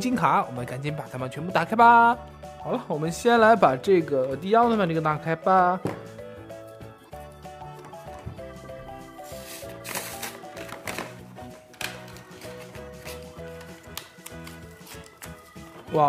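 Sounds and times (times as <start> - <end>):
light background music: 0.0 - 16.0
cardboard tearing and rustling: 9.4 - 15.4.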